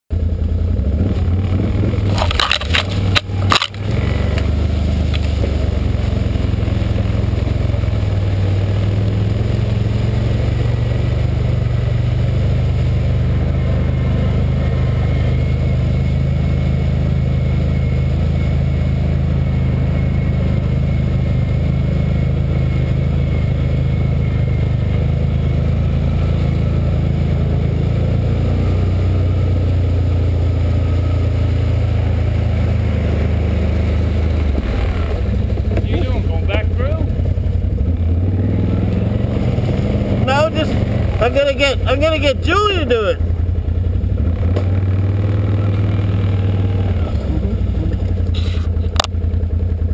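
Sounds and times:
atv engine running: 0.1 - 49.9.

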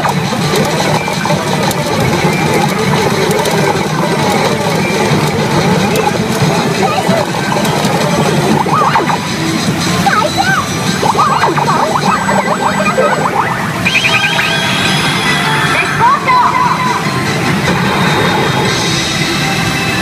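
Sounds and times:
pachinko machine electronic music: 0.0 - 20.0
steady background din: 0.0 - 20.0.

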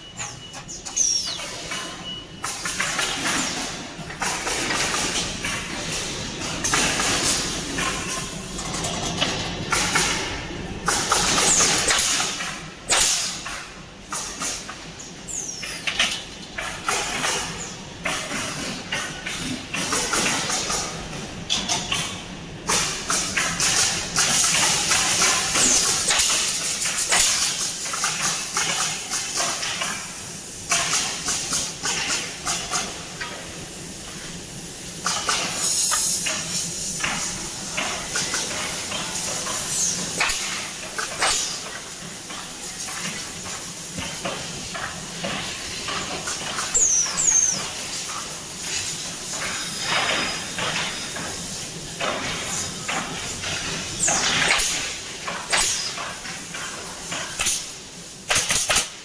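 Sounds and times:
air hiss bursts: 22.7 - 59.0
pneumatic nailing heads knocking: 52.0 - 56.5, 58.3 - 59.0.

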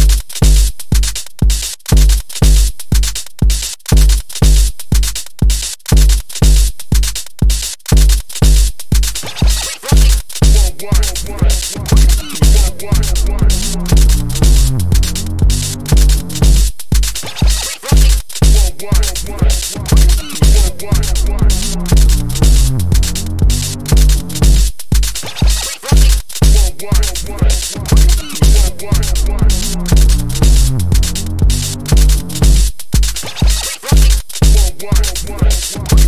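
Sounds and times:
steady kick drum: 0.0 - 36.0.

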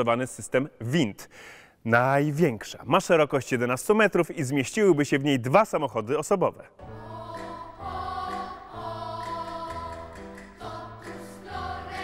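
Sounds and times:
choir singing sustained chords: 6.8 - 12.0.

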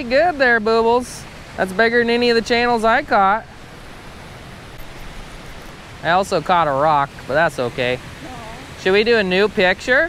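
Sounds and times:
water rushing over spillway: 0.0 - 10.0.

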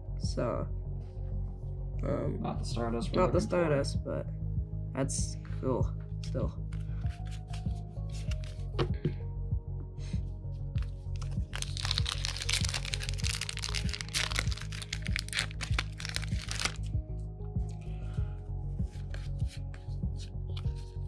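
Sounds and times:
background music with steady beat: 0.0 - 21.0
foil pack crinkling: 11.1 - 16.9.

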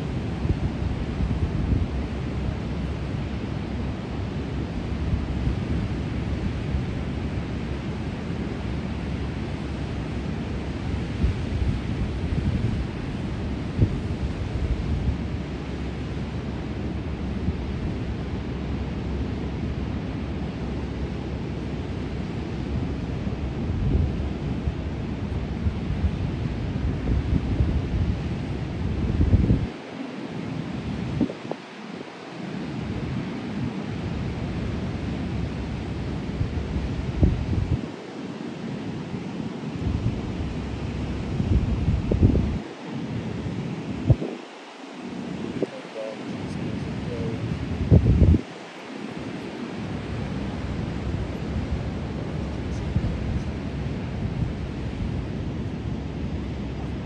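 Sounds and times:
wind buffeting microphone: 8.9 - 18.4, 22.6 - 30.0, 30.7 - 38.1, 39.7 - 57.0.

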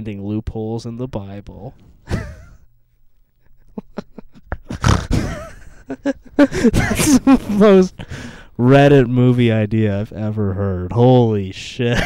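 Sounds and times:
men laughing: 2.1 - 2.7, 3.4 - 8.4.

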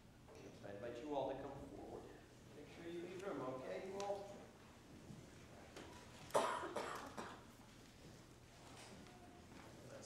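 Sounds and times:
person coughing: 6.3 - 7.4.

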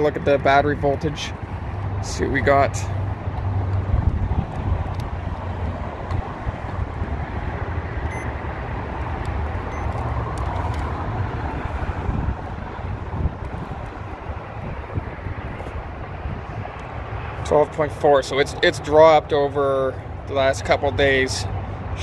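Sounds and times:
wind buffeting microphone: 3.0 - 17.4.

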